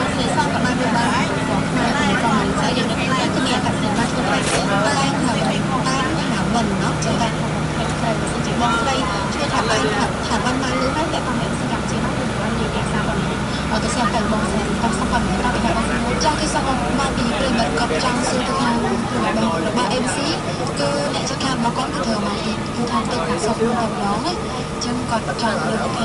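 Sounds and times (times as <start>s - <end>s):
indistinct voices talking: 0.0s - 26.0s
vehicle engine hum: 0.0s - 26.0s.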